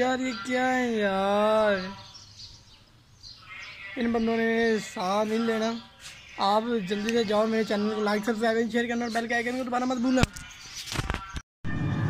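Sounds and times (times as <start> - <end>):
man speaking: 0.0 - 2.0, 3.8 - 10.3
faint background noise: 0.0 - 11.4.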